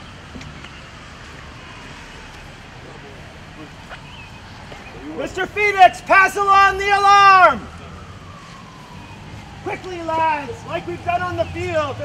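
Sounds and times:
man shouting commands: 0:05.0 - 0:07.7, 0:09.6 - 0:12.0.

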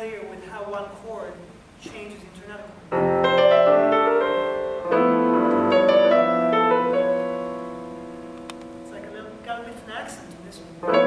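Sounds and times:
piano chords and melody: 0:02.9 - 0:11.0.

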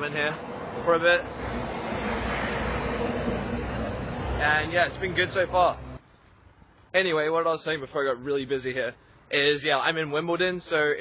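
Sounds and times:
vehicle passing on street: 0:00.0 - 0:06.6.

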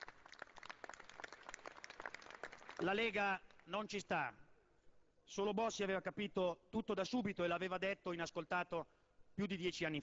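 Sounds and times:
scattered applause: 0:00.0 - 0:03.2.

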